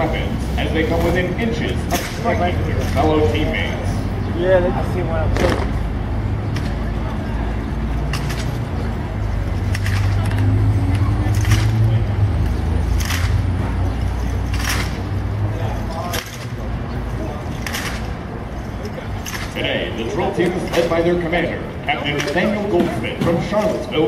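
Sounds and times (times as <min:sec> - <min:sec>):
low engine-like hum: 0:00.0 - 0:24.0
hands slapping rifles: 0:12.9 - 0:13.4, 0:14.5 - 0:15.0.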